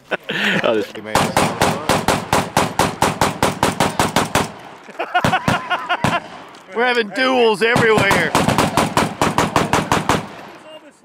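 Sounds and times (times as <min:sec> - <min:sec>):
rapid gunfire: 0:01.2 - 0:06.4, 0:07.7 - 0:10.7.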